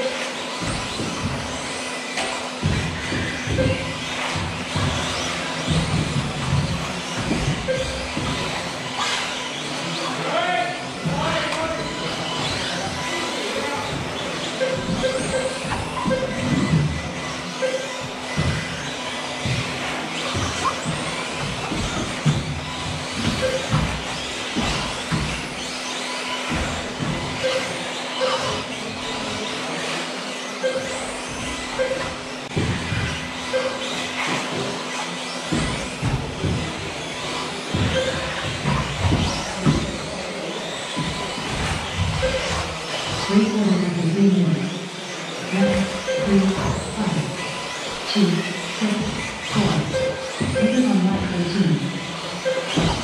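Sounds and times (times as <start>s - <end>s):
electric motors whining: 0.0s - 53.0s
short beeps: 31.7s - 32.2s.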